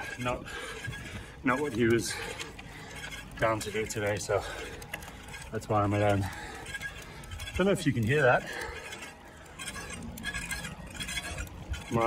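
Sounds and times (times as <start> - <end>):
disc brake scraping on rotor: 0.0 - 12.0.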